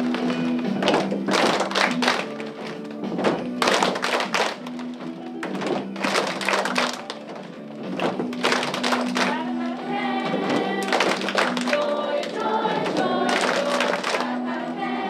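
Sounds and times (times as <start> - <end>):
children clapping: 0.0 - 9.7, 10.3 - 14.6
instrumental music: 0.0 - 15.0.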